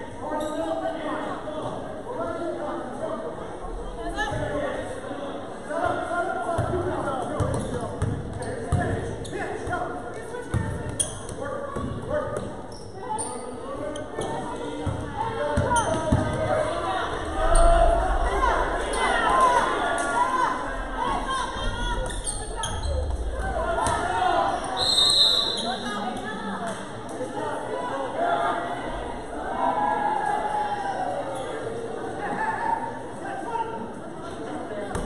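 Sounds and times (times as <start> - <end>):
voices of players: 0.0 - 35.0.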